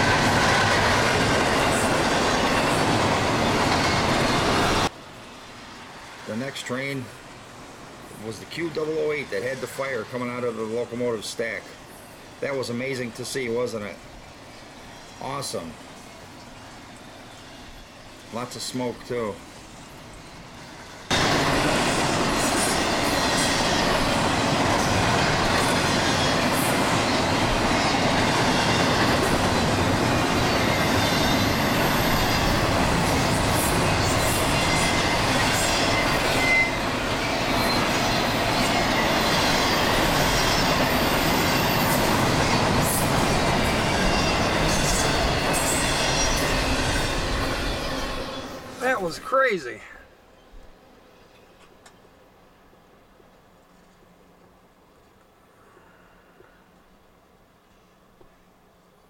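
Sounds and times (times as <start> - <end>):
high wheel squeal: 25.0 - 49.0.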